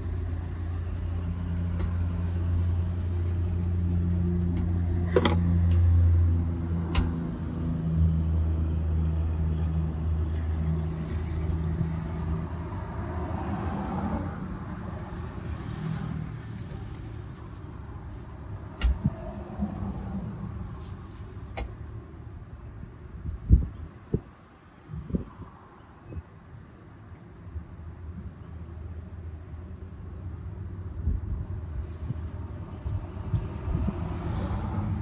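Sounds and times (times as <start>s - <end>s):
engine humming: 0.0s - 7.3s
street traffic: 0.0s - 35.0s.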